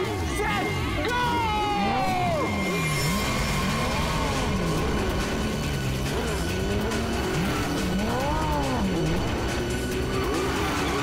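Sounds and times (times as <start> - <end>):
background music: 0.0 - 11.0
motorcycle engines revving: 0.0 - 11.0.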